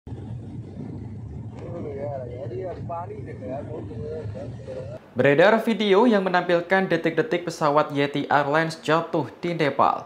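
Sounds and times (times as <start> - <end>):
steady low drone: 0.1 - 5.0
person speaking: 1.7 - 10.0.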